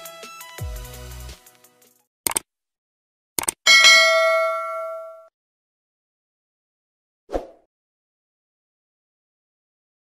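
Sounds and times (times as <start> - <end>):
bright bell ding: 3.7 - 5.3.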